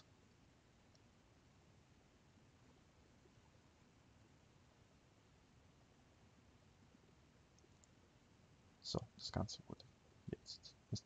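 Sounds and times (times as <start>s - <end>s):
faint microphone hiss: 0.0s - 11.0s.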